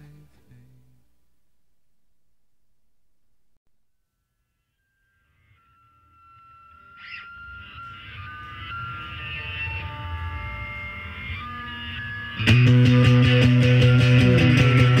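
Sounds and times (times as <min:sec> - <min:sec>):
electric guitar feedback tones: 0:04.9 - 0:15.0.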